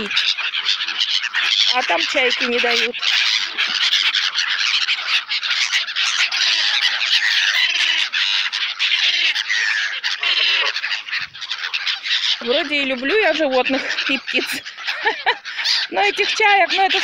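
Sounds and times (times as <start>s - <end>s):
lower bird call: 0.0s - 16.7s
gulls squawking: 0.0s - 17.0s.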